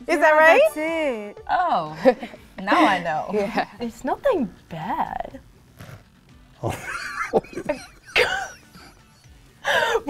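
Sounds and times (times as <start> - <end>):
person laughing: 6.6 - 10.0.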